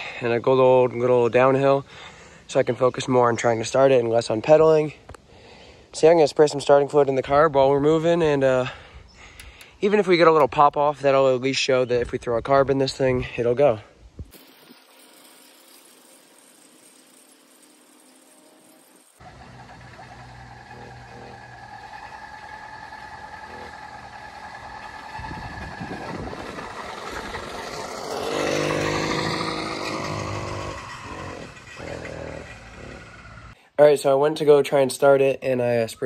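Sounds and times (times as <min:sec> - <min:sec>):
small petrol engine sputtering: 0:14.3 - 0:33.6.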